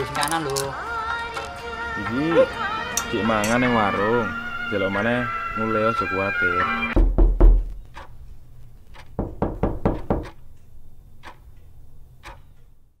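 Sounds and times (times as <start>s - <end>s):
deep thump: 7.0s - 7.8s
sharp knocking: 7.0s - 8.2s, 8.9s - 10.4s.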